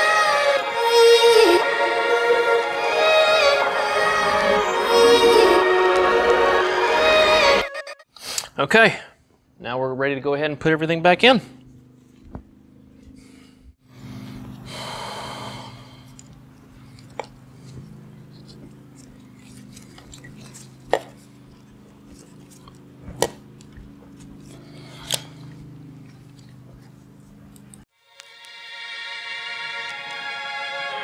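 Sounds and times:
steady low hum: 9.0 - 27.9
rustle of gloved hands: 16.0 - 27.8.

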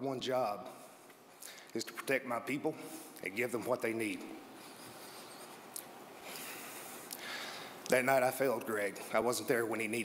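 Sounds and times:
person speaking: 0.0 - 4.8, 7.8 - 10.0.

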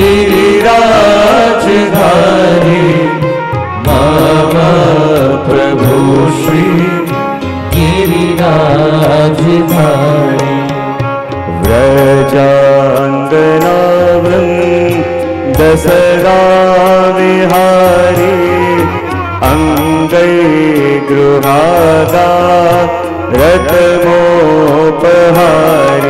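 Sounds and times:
instrumental accompaniment: 0.0 - 26.0
percussion strikes: 0.0 - 26.0
person singing devotional song: 0.0 - 26.0.

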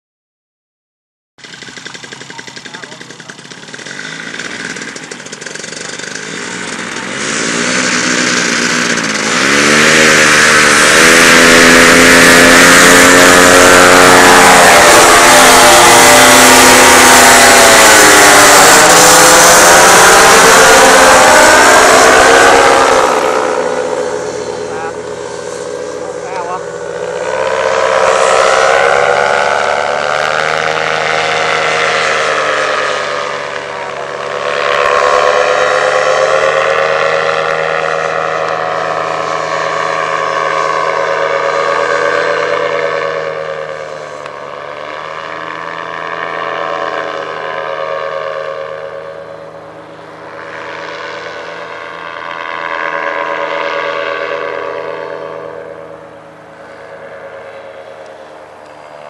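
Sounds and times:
paramotor engine and propeller: 1.4 - 59.0.

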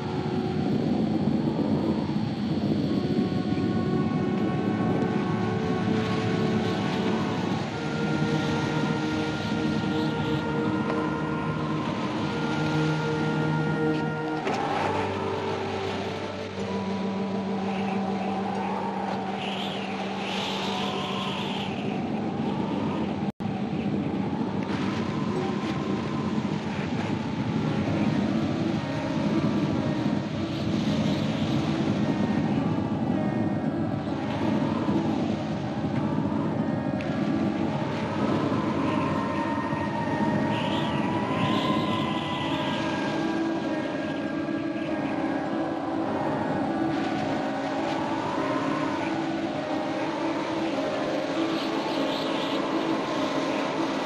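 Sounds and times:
high wavering whine: 0.0 - 54.0
low droning tones: 0.0 - 54.0.

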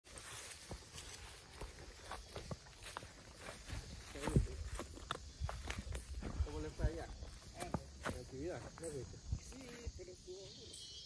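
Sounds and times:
footsteps on dirt path: 0.0 - 10.6.

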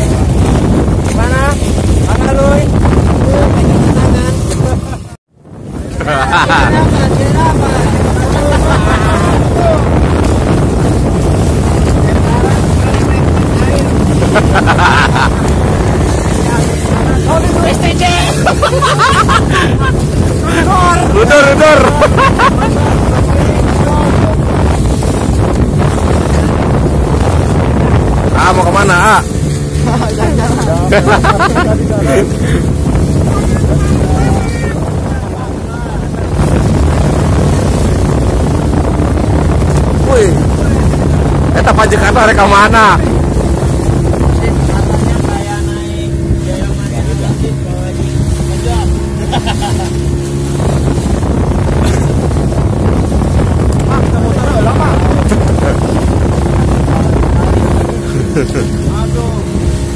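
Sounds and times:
boat motor running: 0.0 - 59.9
water splashing along hull: 0.0 - 59.9
wind buffeting microphone: 0.0 - 59.9.

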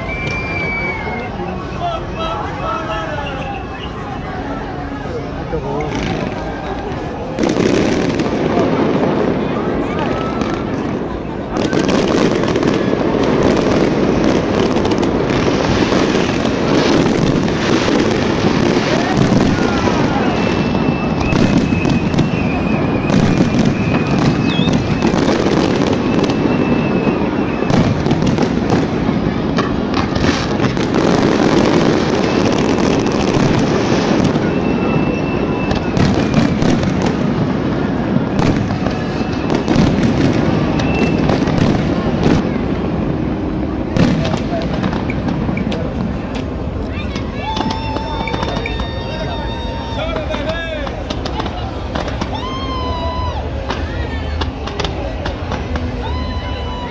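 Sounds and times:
fireworks bursts and crackling: 0.0 - 56.9
high whistling fireworks: 0.0 - 56.9.

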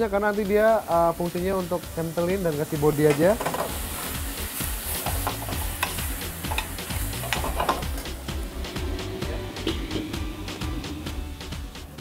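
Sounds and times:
vegetables sizzling in a pan: 0.0 - 11.6
background music: 0.0 - 12.0.

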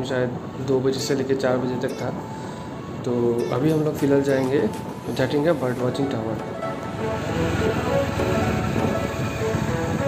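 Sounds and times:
background music: 1.3 - 10.0
wind noise: 4.8 - 10.0
motorcycle engine: 6.9 - 9.9.

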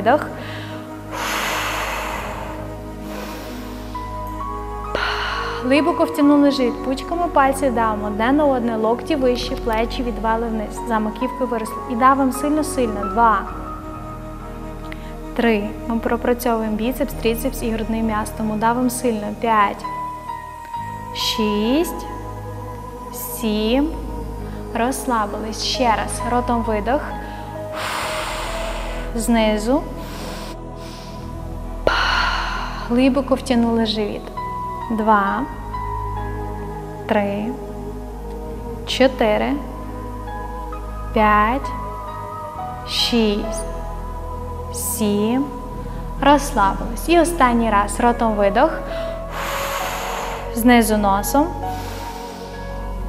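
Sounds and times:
soft background music: 0.0 - 53.0
woman exhaling through lips: 1.1 - 4.2, 49.3 - 50.6.

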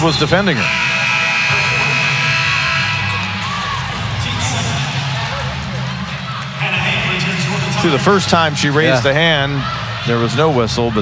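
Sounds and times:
crowd murmur: 0.0 - 11.0
arena buzzer horn: 0.5 - 3.8.

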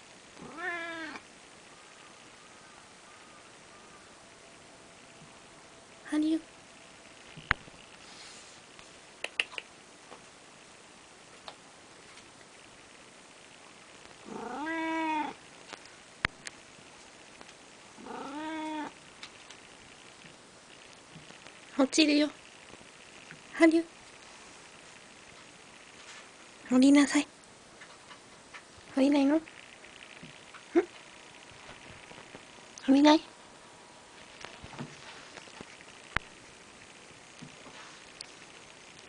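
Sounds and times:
cat meowing: 0.4 - 1.2, 14.2 - 15.4, 18.0 - 19.0.

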